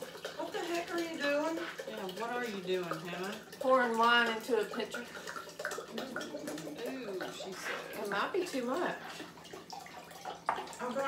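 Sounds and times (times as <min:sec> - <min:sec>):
wine pouring into a glass pitcher: 0:00.0 - 0:11.0.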